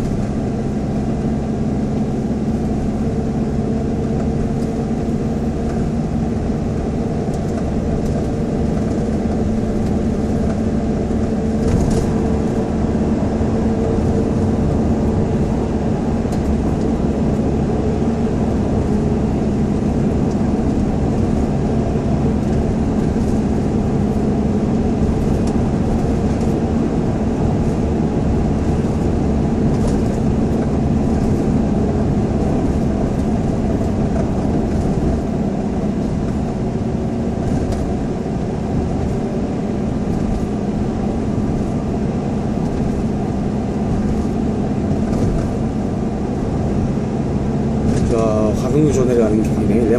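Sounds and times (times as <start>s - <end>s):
car engine and tyres droning: 0.0s - 49.9s.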